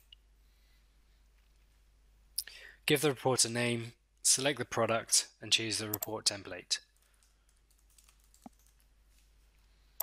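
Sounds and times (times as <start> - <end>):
typing on computer keyboard: 6.9 - 8.9.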